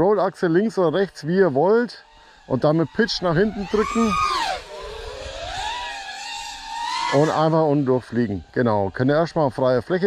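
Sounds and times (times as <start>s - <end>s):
quadcopter motors whining: 0.0s - 10.0s.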